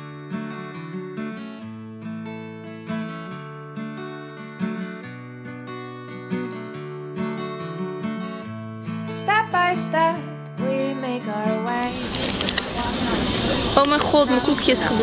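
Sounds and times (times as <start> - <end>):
strummed acoustic guitar chords: 0.0 - 15.0.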